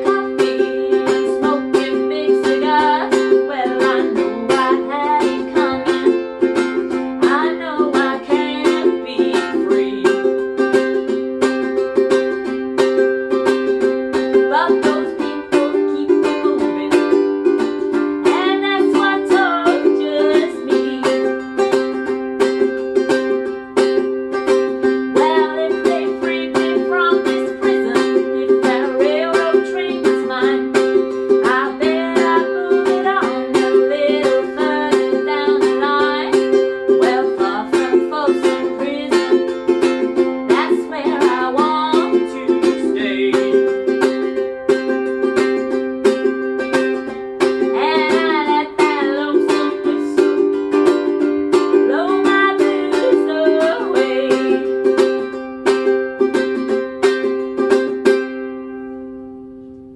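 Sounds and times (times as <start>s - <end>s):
woman singing: 0.0s - 11.3s, 14.1s - 22.2s, 25.0s - 44.6s, 46.7s - 55.4s
ukulele strumming: 0.0s - 59.9s.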